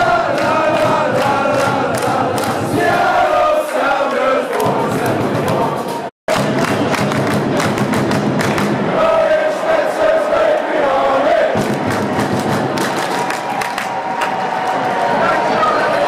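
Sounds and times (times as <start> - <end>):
crowd chanting: 0.0 - 6.9, 8.5 - 12.9
rhythmic clapping: 0.0 - 10.7, 11.6 - 15.2.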